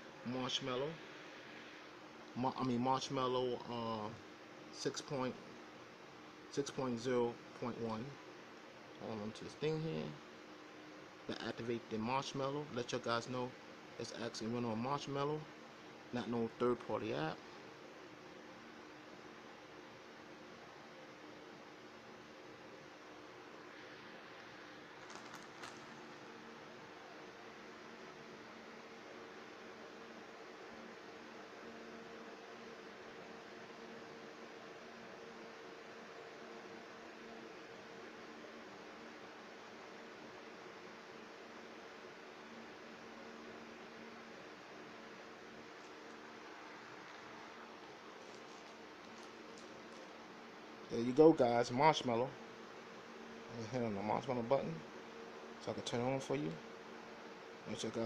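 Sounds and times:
faint room hum: 0:00.0 - 0:58.0.

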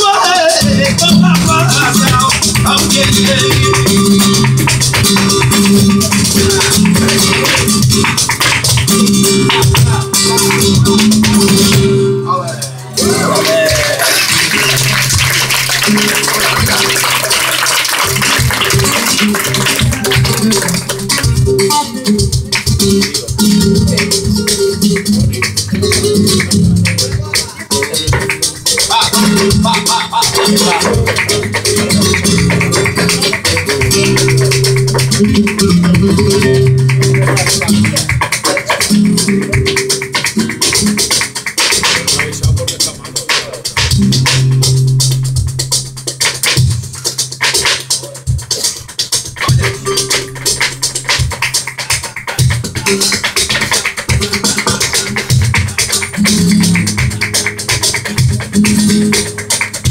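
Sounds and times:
percussion: 0:00.0 - 0:59.9
spanish guitar playing: 0:00.0 - 0:59.9
fast handclaps: 0:00.6 - 0:11.8, 0:13.4 - 0:59.9.

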